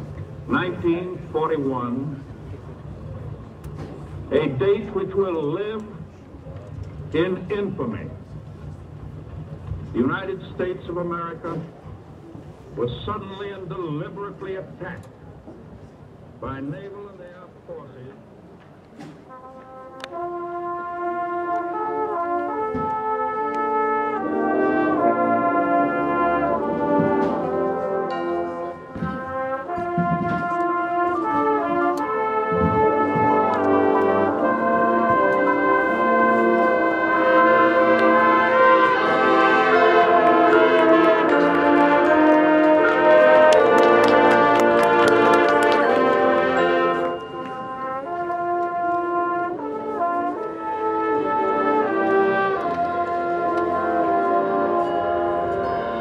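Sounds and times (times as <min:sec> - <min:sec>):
brass playing held chords: 0:19.2 - 0:56.0
percussion strikes: 0:37.8 - 0:48.2.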